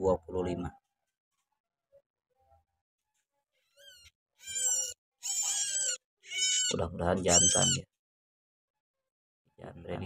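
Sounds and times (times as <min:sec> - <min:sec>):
nestling bird chirping: 0:03.8 - 0:07.8.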